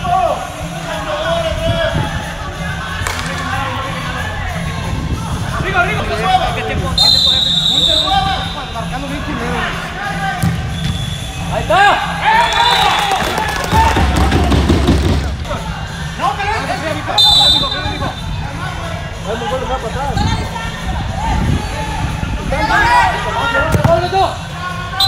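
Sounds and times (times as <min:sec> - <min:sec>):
players shouting: 0:00.0 - 0:25.0
referee's whistle blasts: 0:07.0 - 0:08.8, 0:10.5 - 0:11.7, 0:12.3 - 0:13.2, 0:17.2 - 0:18.4
ball thuds and knocks: 0:13.7 - 0:15.5.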